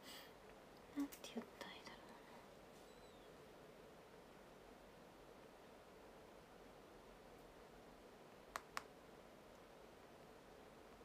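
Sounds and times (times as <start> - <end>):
faint whispered murmur: 0.0 - 3.4
soft clicks: 8.5 - 8.9.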